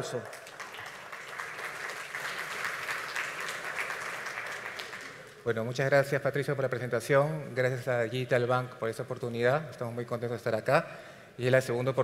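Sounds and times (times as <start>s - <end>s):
audience applauding: 0.0s - 5.4s.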